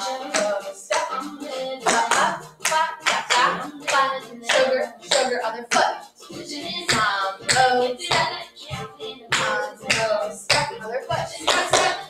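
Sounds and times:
hand claps: 0:00.0 - 0:12.0
music with a beat: 0:00.0 - 0:12.0.

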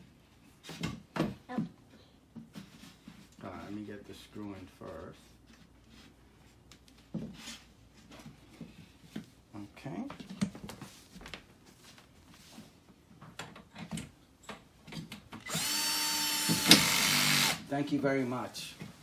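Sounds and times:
cordless drill driving screw: 0:15.4 - 0:17.6.

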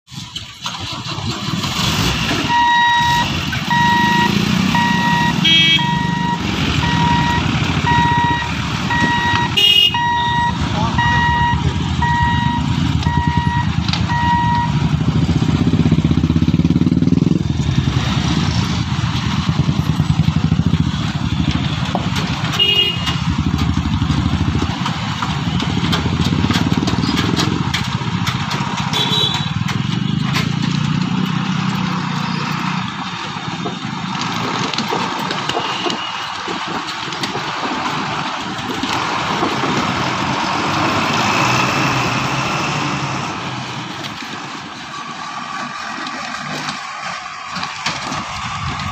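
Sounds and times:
horn toots: 0:02.5 - 0:13.5, 0:22.5 - 0:23.4, 0:28.9 - 0:30.2
electronic beeper: 0:02.5 - 0:14.8
motorcycle engines idling: 0:02.6 - 0:35.3.

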